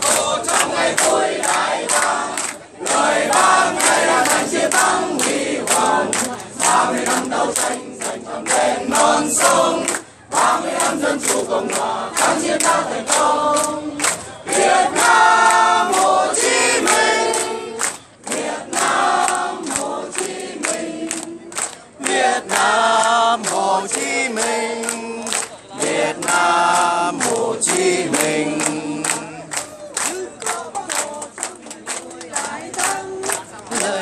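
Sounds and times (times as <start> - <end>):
crowd singing: 0.0 - 34.0
people clapping along: 0.0 - 34.0.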